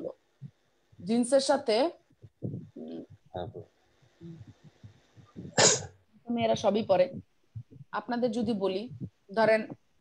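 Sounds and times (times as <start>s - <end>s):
faint low sounds: 2.1s - 9.9s
person sneezing: 5.5s - 5.9s.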